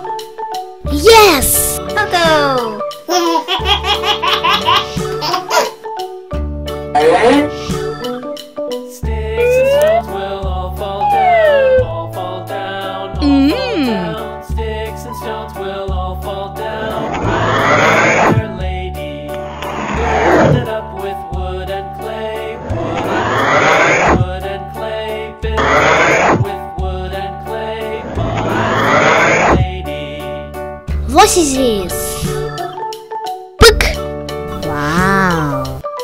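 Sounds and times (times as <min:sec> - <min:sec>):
children's music with bass: 0:00.0 - 0:36.0
child laughing: 0:03.1 - 0:05.8, 0:34.6 - 0:35.8.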